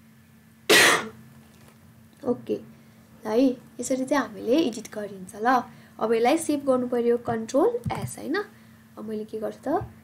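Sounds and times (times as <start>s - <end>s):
faint steady hum: 0.0s - 10.0s
cough: 0.7s - 1.2s.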